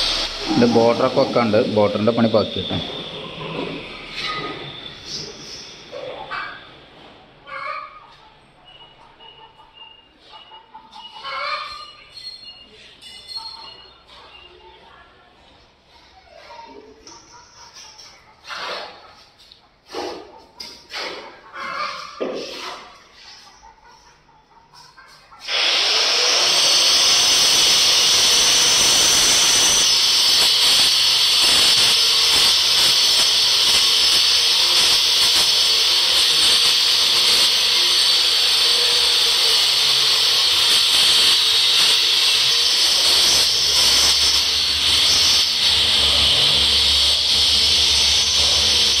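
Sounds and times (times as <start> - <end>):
low rumble: 0.0 - 1.8
hissing power tool: 0.0 - 6.0, 25.4 - 49.0.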